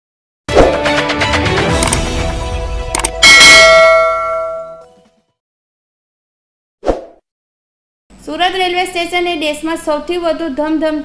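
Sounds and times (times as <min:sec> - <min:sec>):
logo jingle music: 0:00.8 - 0:05.1
sharp hit: 0:03.2 - 0:04.8
bright bell-like chime: 0:03.2 - 0:04.9.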